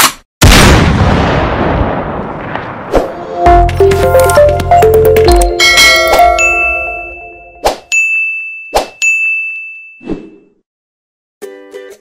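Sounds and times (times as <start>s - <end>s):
intro music: 3.4s - 7.6s
ringing ding: 5.4s - 10.0s.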